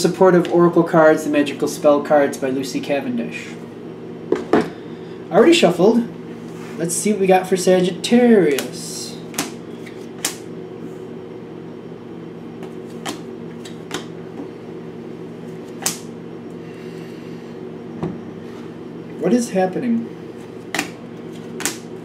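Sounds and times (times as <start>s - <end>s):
steady low hum: 0.0s - 22.0s
cards clicking and snapping: 8.5s - 10.4s, 12.6s - 14.1s, 15.7s - 16.1s, 20.7s - 21.9s.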